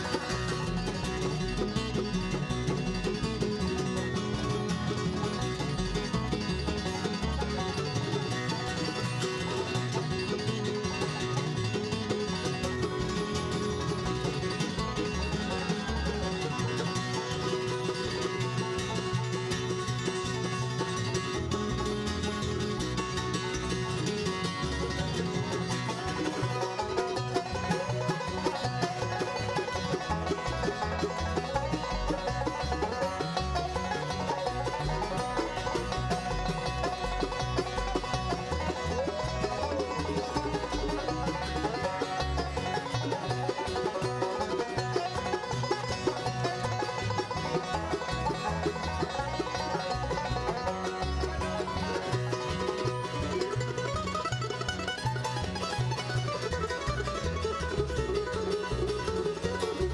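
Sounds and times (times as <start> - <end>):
bluegrass band playing: 0.0 - 59.9
upright bass line: 0.0 - 59.9.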